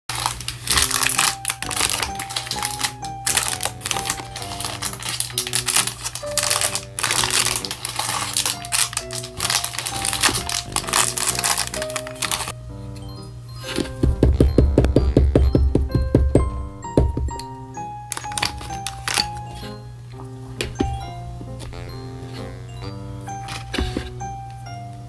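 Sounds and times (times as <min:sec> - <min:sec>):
cellophane crinkling: 0:00.1 - 0:12.6, 0:18.1 - 0:22.6, 0:23.3 - 0:24.3
background music with held notes: 0:00.1 - 0:25.0.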